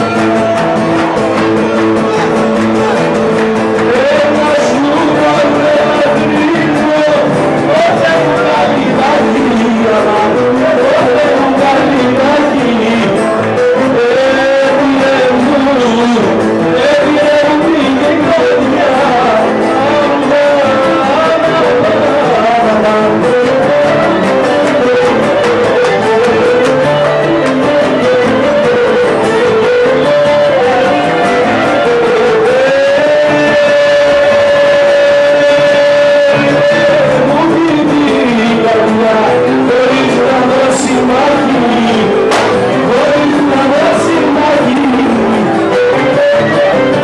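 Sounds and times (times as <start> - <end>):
folk music melody: 0.0 - 47.0
plucked strings accompaniment: 0.0 - 47.0.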